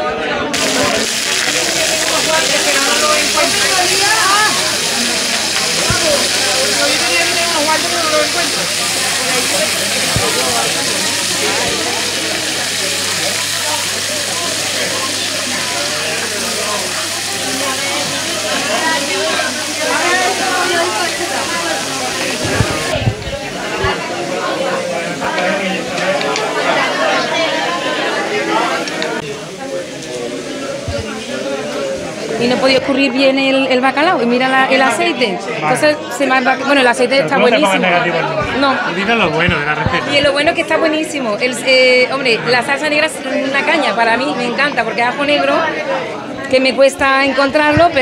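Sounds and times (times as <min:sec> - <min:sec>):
people chatting: 0:00.0 - 0:48.0
fish sizzling in oil: 0:00.6 - 0:35.0.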